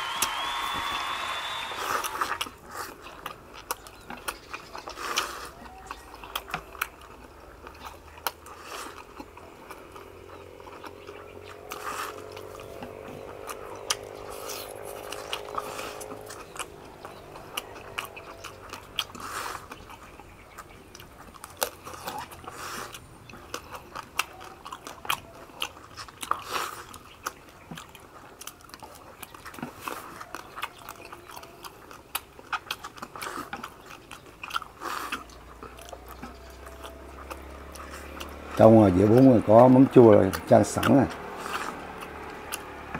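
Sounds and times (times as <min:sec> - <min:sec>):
biting crunchy food: 0:00.0 - 0:42.9
people chewing: 0:00.0 - 0:42.9
slurping noodles: 0:01.4 - 0:03.5, 0:04.8 - 0:06.0, 0:06.8 - 0:10.2, 0:11.3 - 0:20.1, 0:21.7 - 0:24.2, 0:25.4 - 0:27.4, 0:32.6 - 0:36.4, 0:40.3 - 0:42.9.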